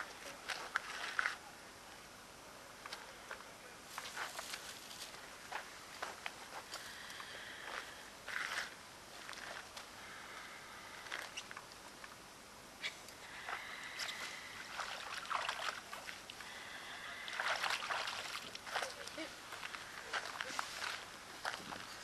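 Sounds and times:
water sloshing: 0:13.5 - 0:16.4, 0:17.0 - 0:19.3.

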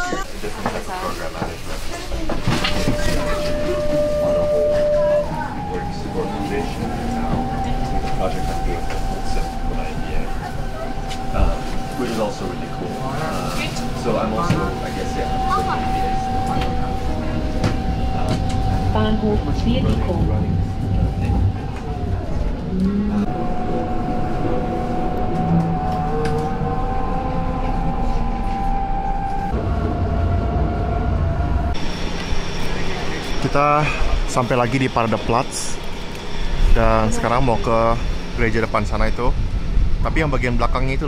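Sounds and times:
people talking: 0:00.0 - 0:23.4, 0:32.6 - 0:35.8, 0:36.7 - 0:39.4, 0:40.0 - 0:41.0
open street ambience: 0:00.0 - 0:41.0
tram rumble: 0:00.0 - 0:41.0
high motor tone: 0:02.4 - 0:39.9.

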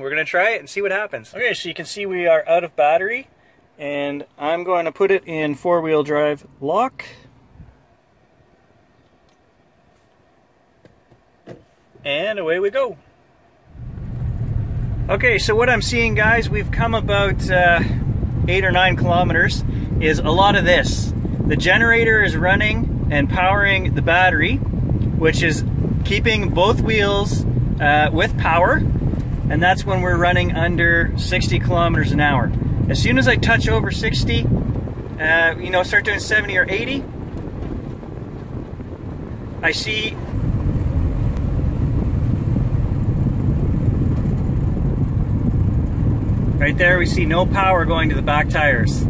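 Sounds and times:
car interior engine rumble: 0:06.7 - 0:49.0.

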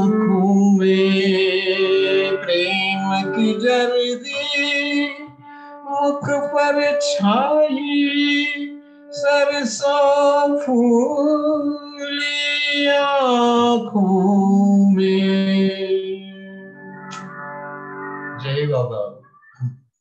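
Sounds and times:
man singing devotional song: 0:00.0 - 0:16.4.

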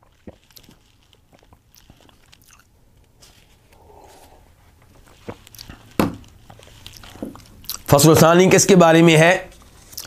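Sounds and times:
sipping and swallowing: 0:00.0 - 0:07.9.

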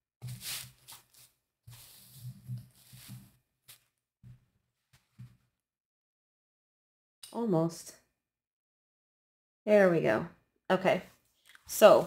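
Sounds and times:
fabric rustling: 0:00.2 - 0:03.8.

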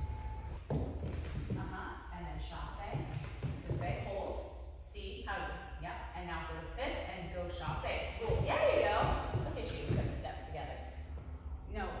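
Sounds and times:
dull low thuds: 0:07.6 - 0:11.9.

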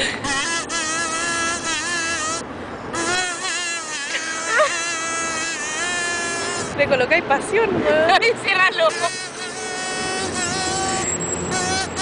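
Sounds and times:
kazoo humming melody: 0:00.0 - 0:06.8, 0:08.8 - 0:12.0.

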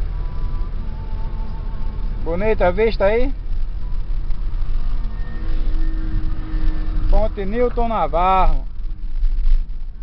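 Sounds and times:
faint steady tone: 0:00.0 - 0:10.0
road and engine rumble: 0:00.0 - 0:10.0.

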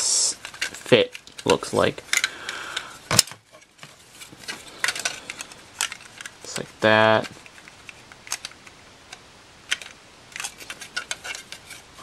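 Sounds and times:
plastic parts clicking: 0:00.4 - 0:12.0.

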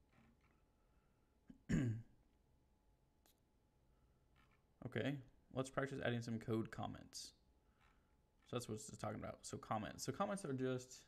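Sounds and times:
man clearing his throat: 0:01.6 - 0:02.1.

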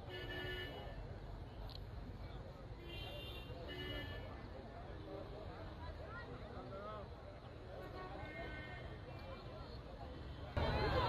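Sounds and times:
distant crowd talking and calling: 0:00.0 - 0:11.0.

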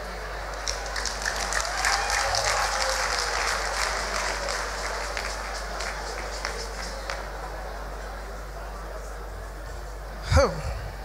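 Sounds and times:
congregation applauding: 0:00.0 - 0:08.0.

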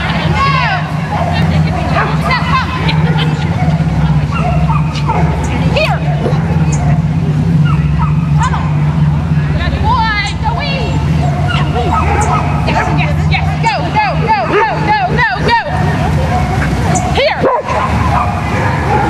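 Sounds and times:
low engine-like hum: 0:00.0 - 0:19.0.

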